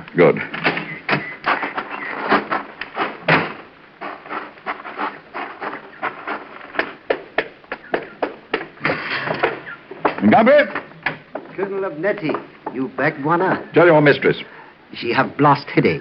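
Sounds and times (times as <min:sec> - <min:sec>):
footsteps on hard floor: 0:02.4 - 0:12.8.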